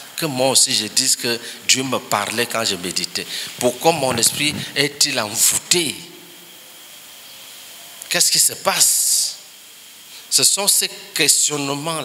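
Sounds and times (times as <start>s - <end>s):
high-pitched background hiss: 0.0s - 12.0s.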